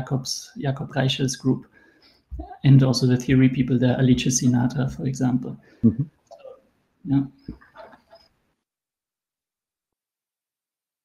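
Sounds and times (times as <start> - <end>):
man speaking: 0.0 - 1.7, 2.6 - 6.1, 7.1 - 7.4.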